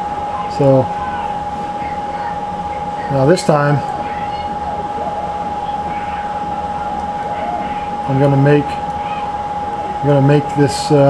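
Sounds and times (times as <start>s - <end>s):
machine hum with whine: 0.0s - 11.0s.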